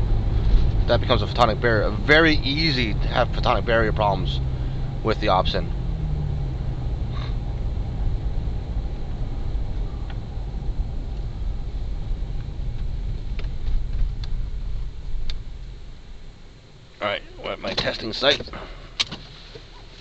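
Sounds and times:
car engine and road rumble: 0.0 - 20.0.

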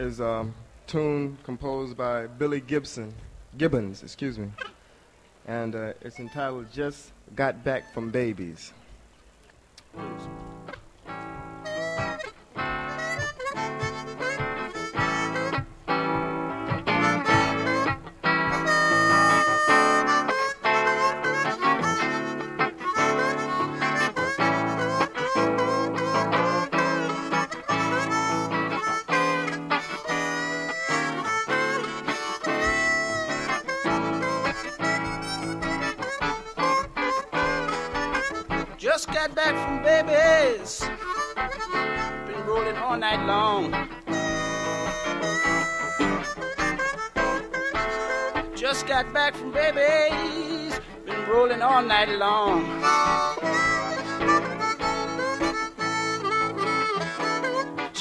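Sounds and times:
guitar accompaniment: 0.0 - 58.0
blues harmonica bending notes: 4.2 - 9.0, 9.6 - 58.0
person singing: 18.5 - 20.1, 20.9 - 58.0.

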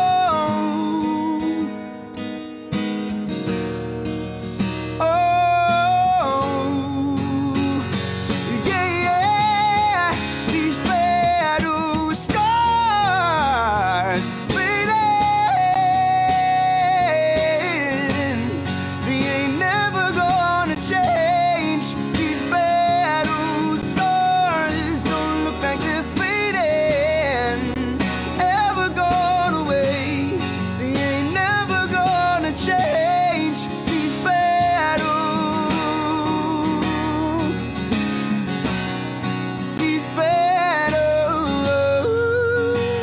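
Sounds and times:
man singing a soulful ballad: 0.0 - 2.3, 4.8 - 43.0
strummed acoustic guitar: 0.0 - 43.0.

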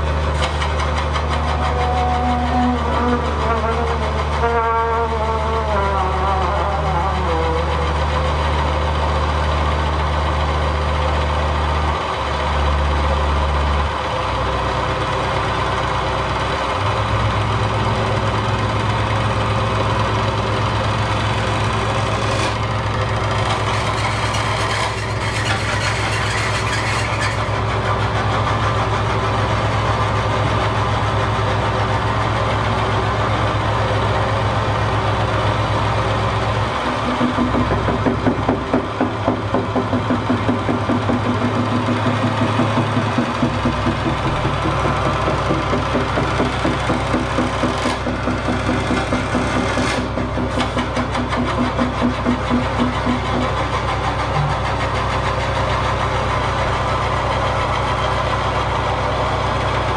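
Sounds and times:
droning experimental music: 0.7 - 9.0, 54.1 - 55.8
throbbing pulsing layer: 54.1 - 55.8.

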